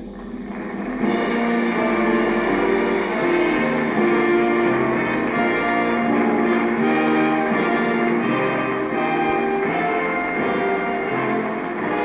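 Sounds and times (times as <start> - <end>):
stage band playing: 0.7 - 12.0.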